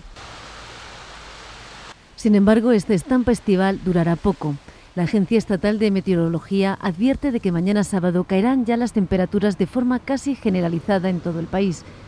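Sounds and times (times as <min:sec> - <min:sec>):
surf washing on shore: 0:00.0 - 0:05.8.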